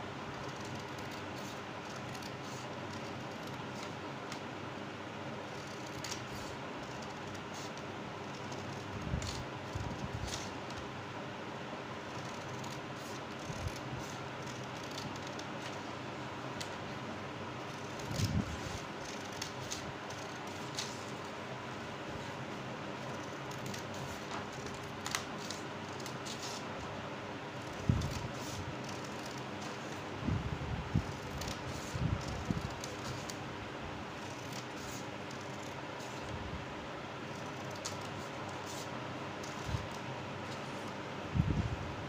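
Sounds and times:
steady background hum: 0:00.0 - 0:42.0
scissors cutting paper: 0:00.3 - 0:04.4, 0:05.5 - 0:10.8, 0:12.0 - 0:15.9, 0:17.6 - 0:21.3, 0:23.0 - 0:26.7, 0:27.6 - 0:30.1, 0:30.9 - 0:33.4, 0:34.2 - 0:36.3, 0:37.2 - 0:41.0.

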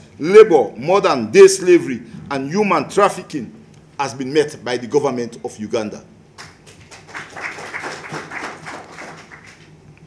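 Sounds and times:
audience applause: 0:06.4 - 0:09.8.

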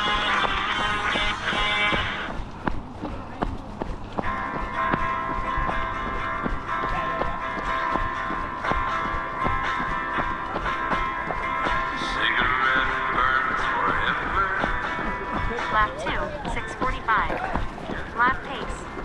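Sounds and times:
music with held tones: 0:00.0 - 0:02.4, 0:04.2 - 0:18.0
running footsteps on gravel: 0:00.0 - 0:19.0.

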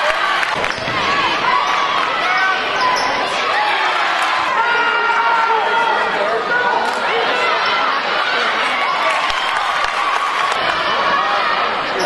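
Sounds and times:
hubbub of many voices: 0:00.0 - 0:12.0.

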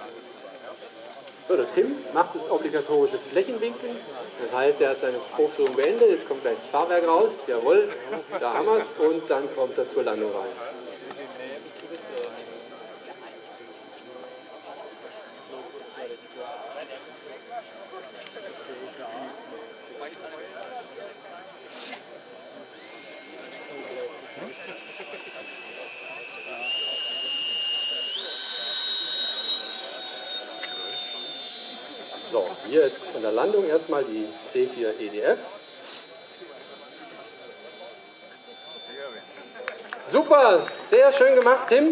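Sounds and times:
crowd chatter: 0:00.0 - 0:41.9
electric ducted fan whine: 0:00.0 - 0:41.9.

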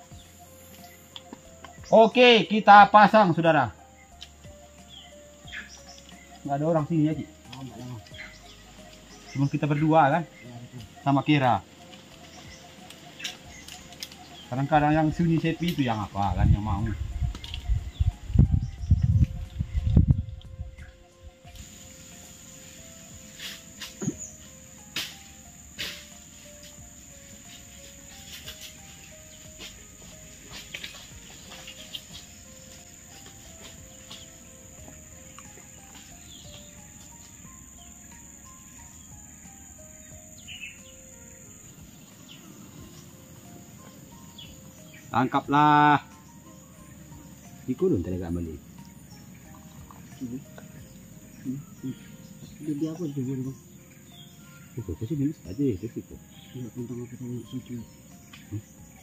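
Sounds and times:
high-pitched insect drone: 0:00.0 - 0:59.0
soft background music: 0:00.0 - 0:59.0.

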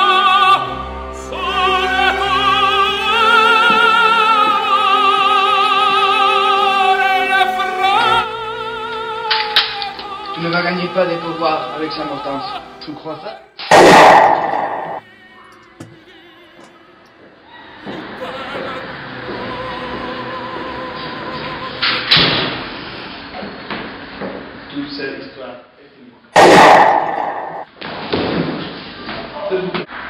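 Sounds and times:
background music: 0:00.0 - 0:23.0
burst of noise: 0:13.6 - 0:15.0, 0:26.4 - 0:28.1
loud pistol shot: 0:13.6 - 0:15.0, 0:26.4 - 0:27.7.

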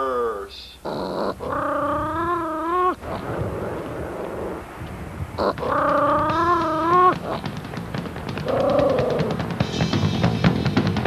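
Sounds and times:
long pitched vocal call: 0:00.0 - 0:04.7.

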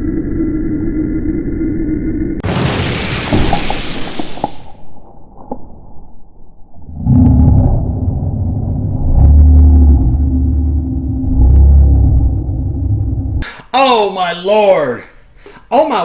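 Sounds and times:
loud low rumble: 0:06.0 - 0:13.4.

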